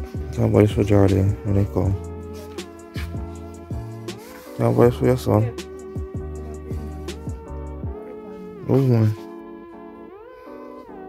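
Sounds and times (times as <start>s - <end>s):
synth background music: 0.0s - 11.0s.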